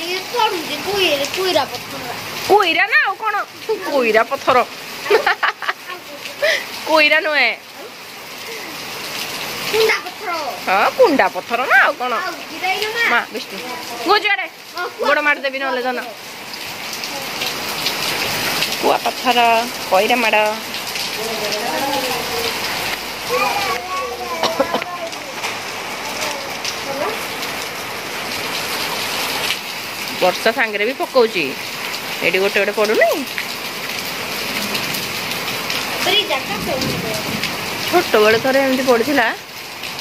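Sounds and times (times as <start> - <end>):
rain on paving: 0.0 - 40.0.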